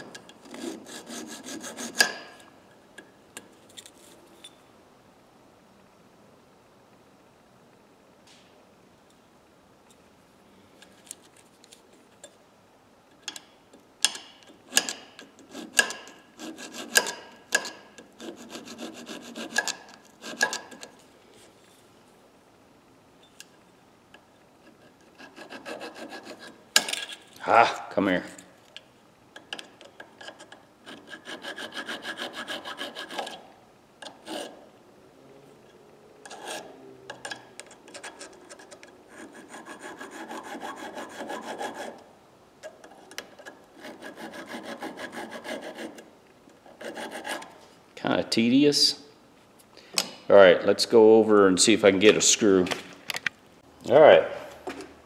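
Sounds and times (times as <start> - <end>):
hand file scraping steel: 0.4 - 2.4, 14.6 - 20.9, 24.7 - 26.6, 30.2 - 33.4, 34.0 - 34.6, 36.2 - 36.8, 37.8 - 47.6.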